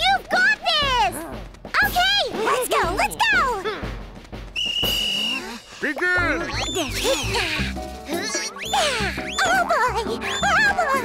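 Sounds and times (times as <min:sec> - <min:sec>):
whistle blown: 0:04.5 - 0:05.8, 0:06.5 - 0:07.4, 0:08.6 - 0:09.6, 0:10.2 - 0:10.8.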